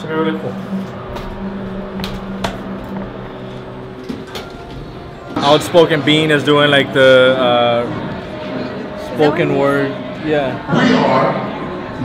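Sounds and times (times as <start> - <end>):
elevator hum and rumble: 0.0 - 10.8.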